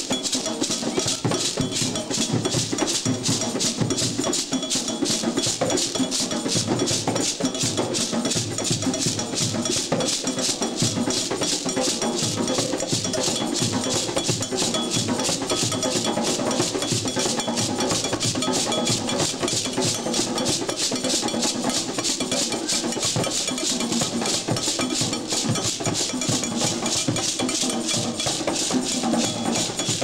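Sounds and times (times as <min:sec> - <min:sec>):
hand drums playing a rhythm: 0:00.0 - 0:30.0
high-pitched repeated drum stroke: 0:00.0 - 0:30.0.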